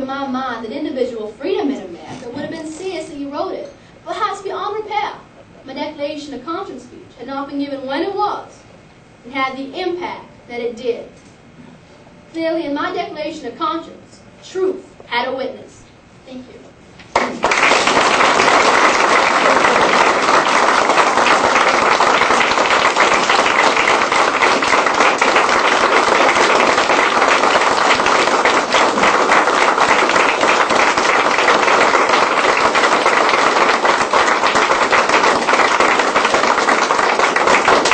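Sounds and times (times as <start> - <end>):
audience applauding: 17.1 - 37.9.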